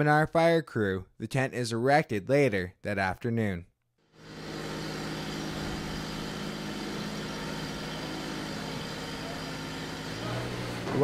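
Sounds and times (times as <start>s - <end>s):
motor humming steadily: 4.2s - 11.0s.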